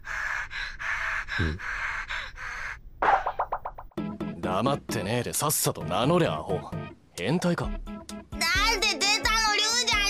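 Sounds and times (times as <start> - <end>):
breathy puffs: 0.0 - 2.8.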